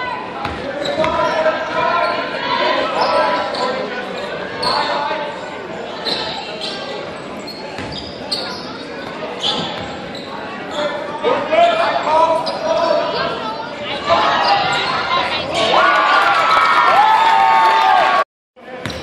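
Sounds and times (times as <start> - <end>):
shoe squeaks: 0.8 - 2.3, 2.9 - 5.2, 6.0 - 11.1, 12.2 - 13.0.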